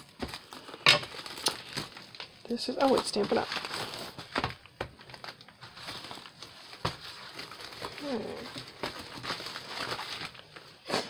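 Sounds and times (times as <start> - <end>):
paper packing rustling: 0.0 - 11.0
plastic sleeve crinkling: 0.0 - 11.0.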